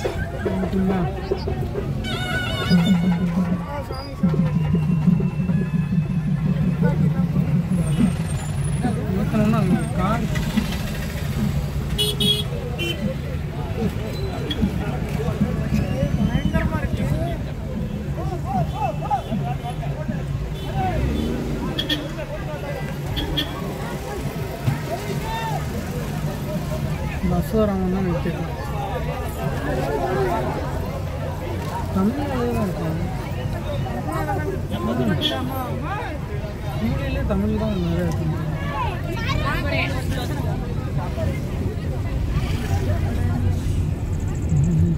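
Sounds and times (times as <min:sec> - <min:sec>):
car engine and road noise: 0:00.0 - 0:44.9
crowd talking and calling: 0:00.0 - 0:44.9.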